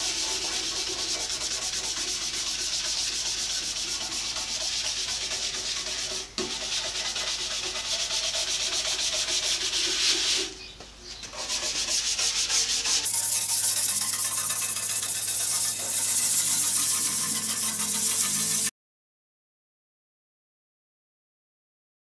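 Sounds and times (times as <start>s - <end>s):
scrub brush scrubbing metal: 0.0s - 10.6s, 11.3s - 18.7s.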